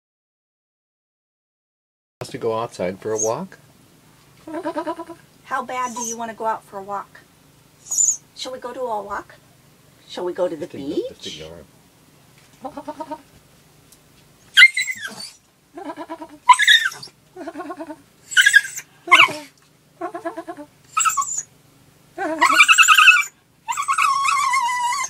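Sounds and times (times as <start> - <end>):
dog whining: 3.1 - 3.4, 5.8 - 6.3, 7.8 - 8.3, 14.5 - 21.5, 22.2 - 25.0.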